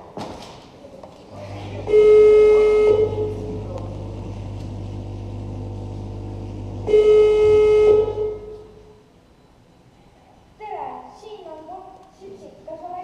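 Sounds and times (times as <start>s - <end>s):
steady low hum: 1.3s - 9.0s
loud horn blast: 1.4s - 8.8s.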